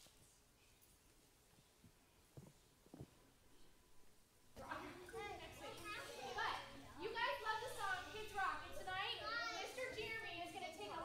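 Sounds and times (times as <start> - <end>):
small children talking and calling: 4.6 - 11.0.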